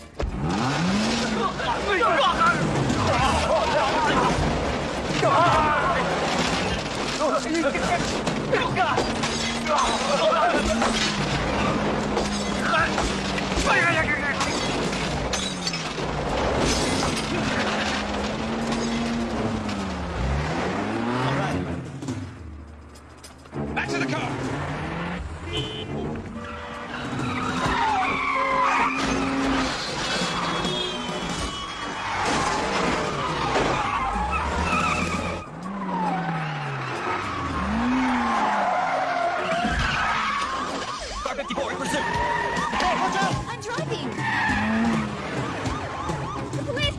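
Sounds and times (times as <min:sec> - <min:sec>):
tyres squealing and skidding: 0:00.0 - 0:21.8, 0:23.4 - 0:46.9
car engines revving: 0:00.0 - 0:46.9.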